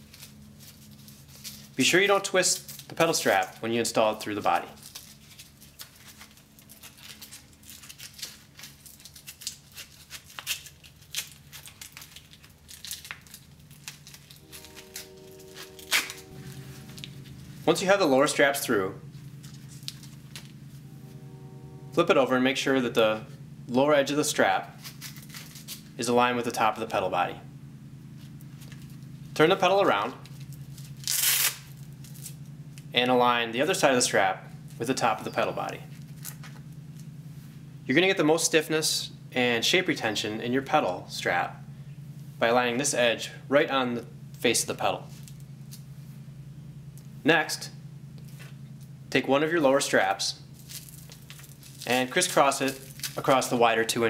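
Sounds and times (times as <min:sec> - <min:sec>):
strap rustling and scraping: 0:00.0 - 0:03.6, 0:04.4 - 0:21.3, 0:24.6 - 0:26.0, 0:28.0 - 0:33.0, 0:35.8 - 0:37.8, 0:45.1 - 0:46.4, 0:48.2 - 0:49.0, 0:50.4 - 0:53.6
faint steady hum: 0:00.0 - 0:54.0.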